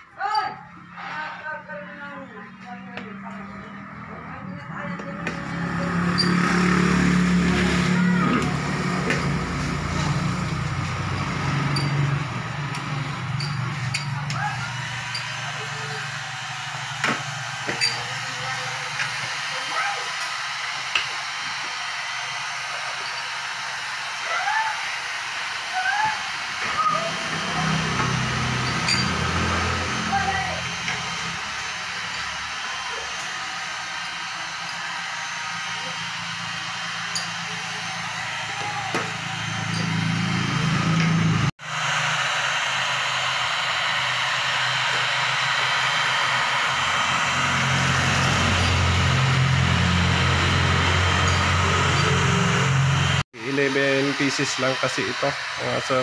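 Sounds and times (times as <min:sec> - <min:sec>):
heat gun blowing: 0:05.2 - 0:56.0.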